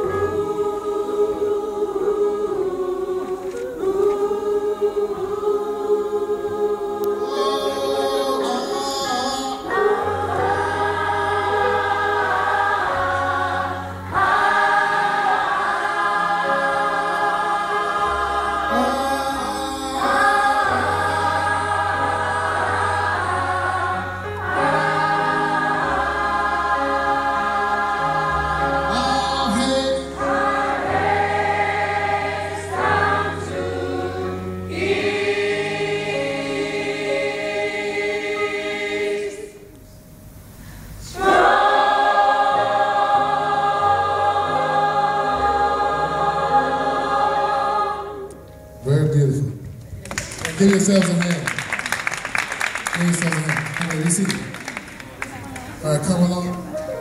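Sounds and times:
gospel choir singing: 0:00.0 - 0:40.0, 0:40.7 - 0:49.4.

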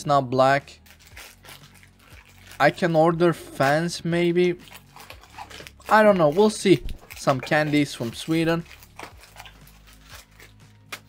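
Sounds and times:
bags of sweets handled: 0:00.3 - 0:11.0.

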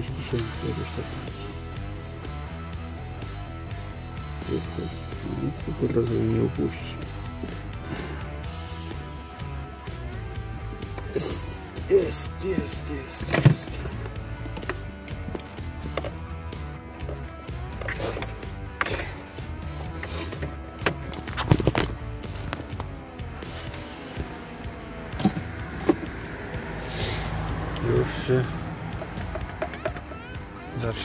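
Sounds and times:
radio playing music and talk: 0:00.0 - 0:26.0, 0:27.0 - 0:31.0.

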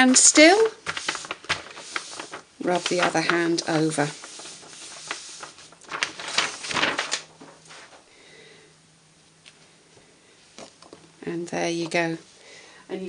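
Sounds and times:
palm rubbing on cardstock: 0:00.8 - 0:05.8.

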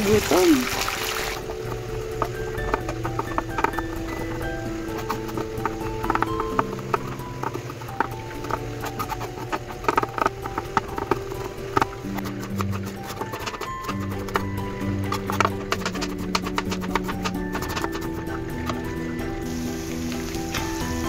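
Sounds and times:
slow background music: 0:00.0 - 0:21.0
knife chopping on cutting board: 0:04.9 - 0:18.9.

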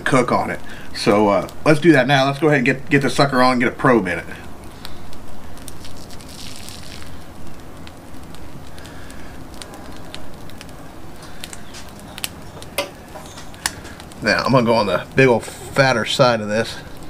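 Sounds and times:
low steady hiss: 0:00.0 - 0:17.0
meat crackling on grill: 0:00.0 - 0:17.0.

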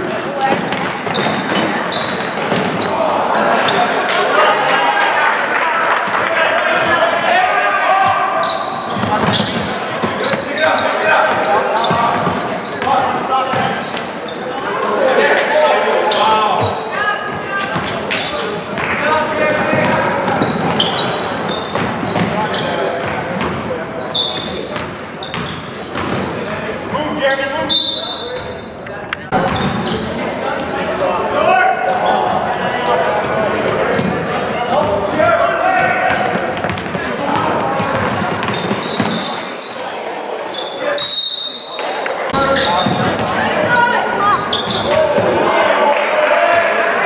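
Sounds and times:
sneakers squeaking: 0:00.0 - 0:04.2, 0:06.7 - 0:46.7
players and spectators voices: 0:00.0 - 0:47.0.

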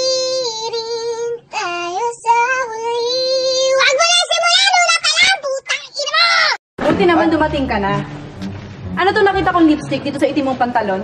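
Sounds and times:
high-pitched wordless singing: 0:00.0 - 0:07.5.

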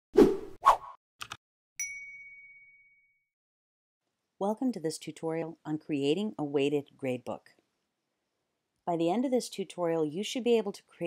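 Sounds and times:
bright ding: 0:01.8 - 0:03.2.

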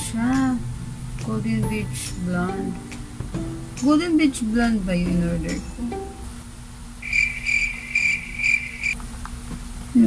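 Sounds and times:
cricket chirping: 0:07.0 - 0:09.0.

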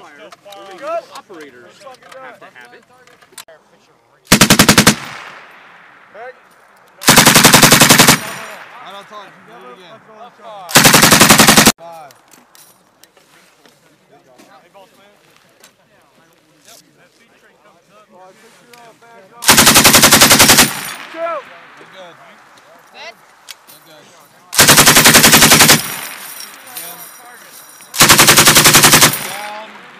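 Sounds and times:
machine gun firing bursts: 0:04.3 - 0:05.4, 0:07.0 - 0:08.6, 0:10.7 - 0:11.8, 0:19.4 - 0:21.1, 0:24.6 - 0:26.3, 0:28.0 - 0:29.7.

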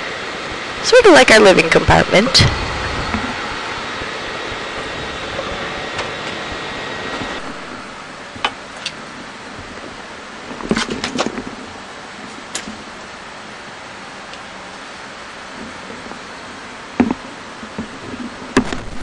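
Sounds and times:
faint high whine: 0:00.0 - 0:19.0
ventilation fans hiss and hum: 0:00.0 - 0:19.0.

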